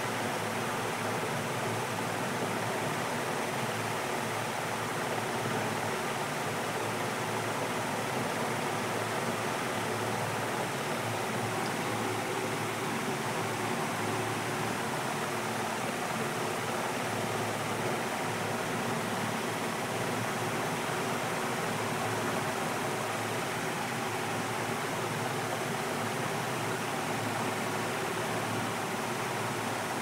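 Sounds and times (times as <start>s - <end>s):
aquarium water rushing: 0.0s - 30.0s.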